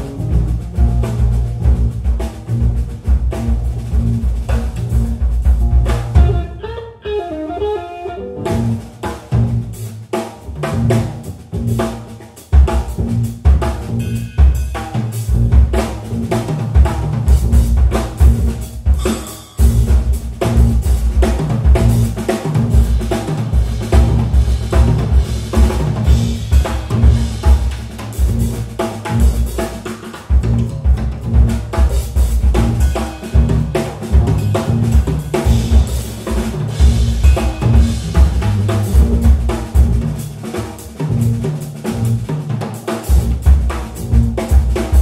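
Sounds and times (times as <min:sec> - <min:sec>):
jazz-funk band playing: 0:00.0 - 0:45.0.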